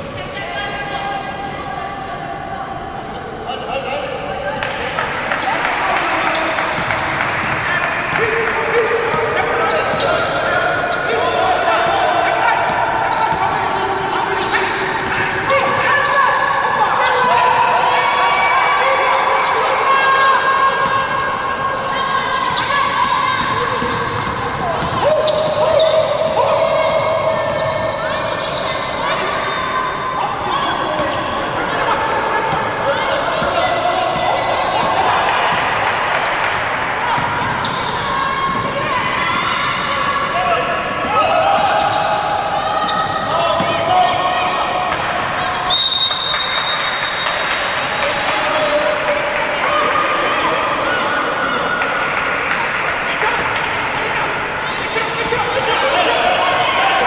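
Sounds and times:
players calling out: 0.0s - 57.0s.

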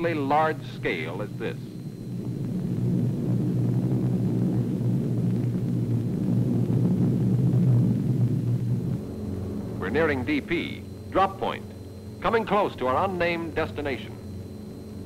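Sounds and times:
propeller plane engines droning: 0.0s - 15.0s.

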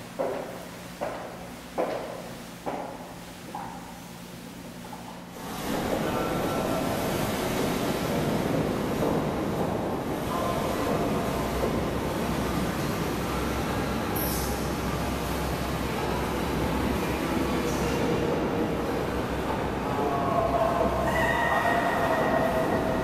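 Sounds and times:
footsteps echoing in a hallway: 0.0s - 13.2s
boat motor churning water: 5.2s - 23.0s.

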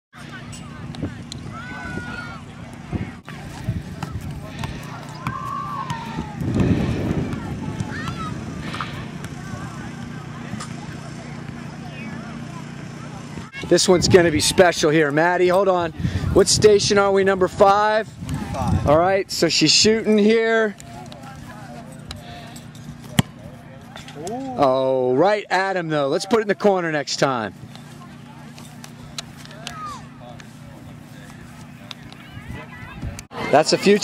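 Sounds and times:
faint distant voices: 0.2s - 16.4s, 27.3s - 34.0s
people talking and calling: 0.2s - 34.0s
steady low rumble: 0.7s - 11.4s
soccer ball thud: 3.3s - 10.2s, 23.0s - 23.6s.

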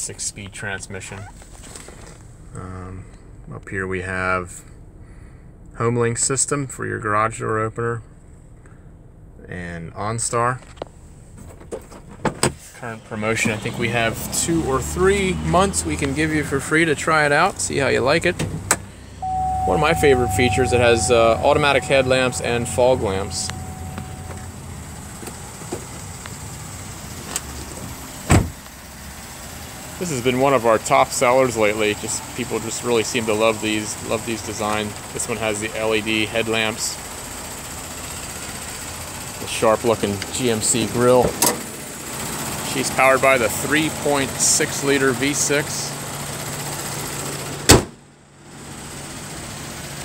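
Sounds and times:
car engine idling: 0.1s - 50.0s
low steady hum: 18.9s - 26.5s
car door slamming: 28.2s - 28.6s, 47.7s - 48.0s.

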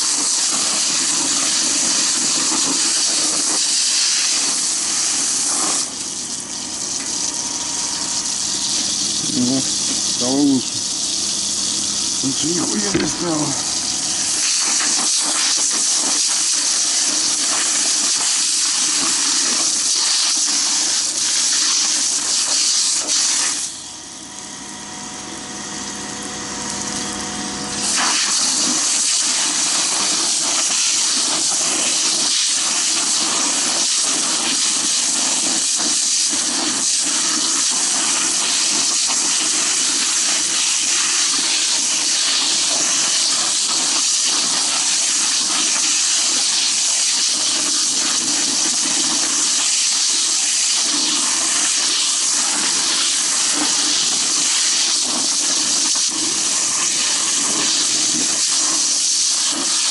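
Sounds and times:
fire hose spraying water: 0.0s - 59.9s.

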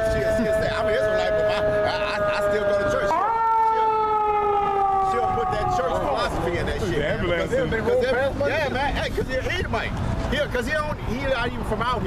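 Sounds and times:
vehicle siren passing: 0.0s - 7.0s.

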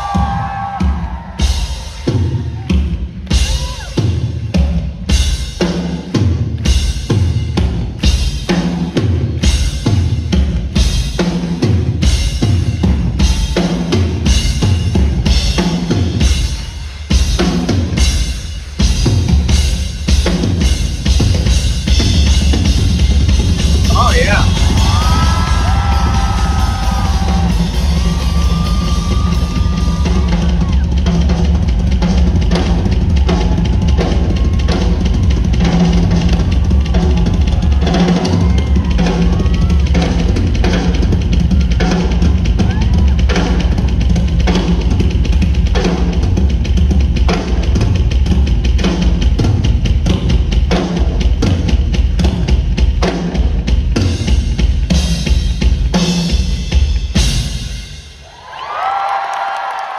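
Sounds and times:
live rock drum solo: 0.0s - 58.3s.

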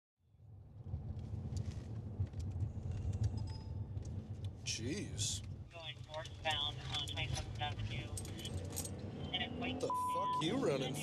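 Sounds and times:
car engine rumble: 0.3s - 11.0s
road noise: 0.4s - 11.0s.

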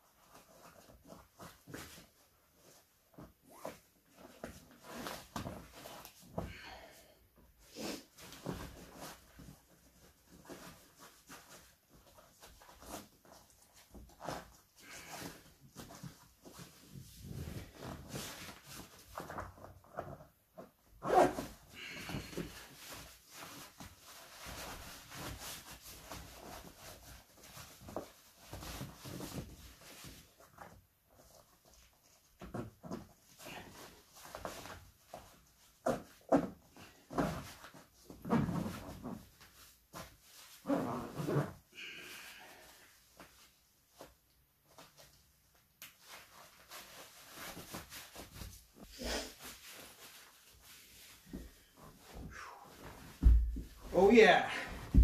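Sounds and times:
fabric rustling: 7.4s - 55.0s
boots scraping and knocking: 53.0s - 53.9s.

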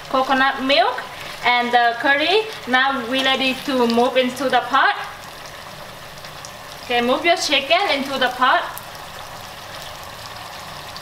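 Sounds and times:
chicken sizzling in a pan: 0.0s - 11.0s.

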